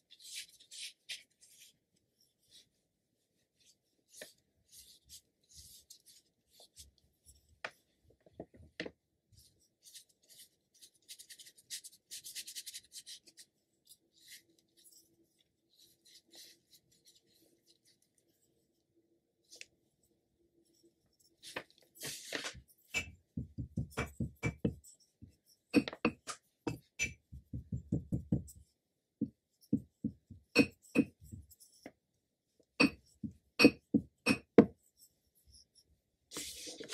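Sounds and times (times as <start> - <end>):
brush stroking on paper: 9.5 - 18.7, 21.2 - 25.7, 35.0 - 36.9.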